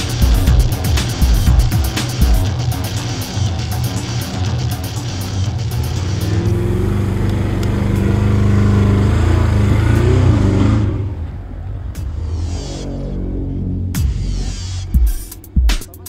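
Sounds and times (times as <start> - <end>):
off-road vehicle engine revving: 0.0 - 15.0
background music: 0.0 - 16.0.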